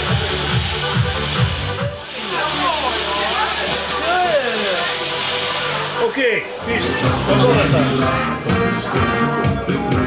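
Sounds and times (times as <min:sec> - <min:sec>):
firework fountain hissing: 0:00.0 - 0:09.4
people's voices: 0:01.9 - 0:10.0.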